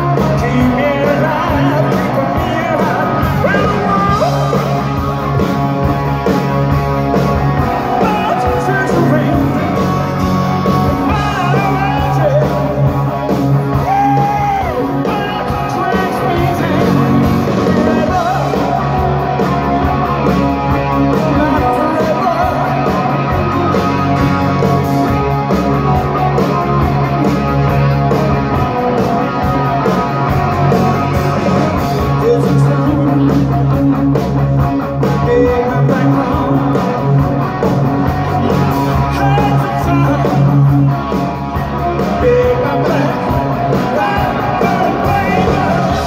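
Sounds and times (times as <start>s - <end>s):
person singing: 0.0s - 4.9s, 7.6s - 24.4s, 31.5s - 34.4s, 35.0s - 37.4s, 38.1s - 41.1s, 41.9s - 46.0s
bass: 0.0s - 46.0s
drums: 0.0s - 46.0s
electric guitars: 0.0s - 46.0s.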